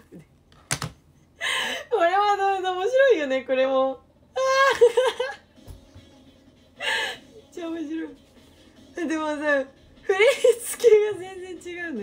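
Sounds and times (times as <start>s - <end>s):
woman laughing: 4.4s - 5.5s.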